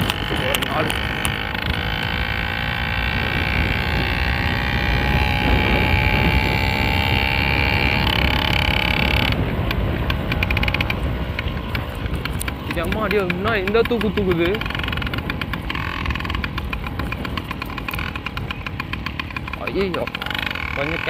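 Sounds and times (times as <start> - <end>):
rattling clicks: 0.0 - 2.2, 8.0 - 21.0
small engine running: 0.0 - 21.0
wind rumble on microphone: 0.0 - 21.0.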